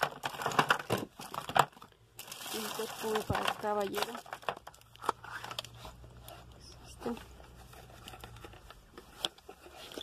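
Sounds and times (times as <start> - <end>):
plastic wrap crinkling: 0.0 - 10.0.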